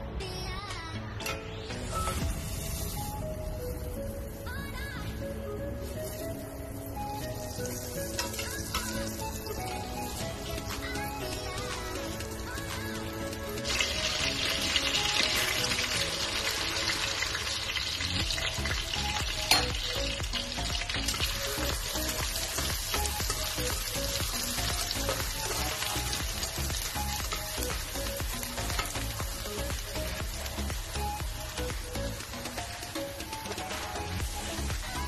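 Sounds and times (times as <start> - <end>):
butter sizzling in a wok: 1.7 - 35.0.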